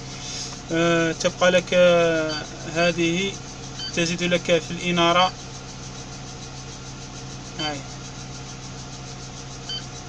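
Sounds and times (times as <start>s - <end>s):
crane engine idling: 0.0s - 10.0s
electronic beep: 2.2s - 2.6s, 3.8s - 4.1s, 9.7s - 10.0s.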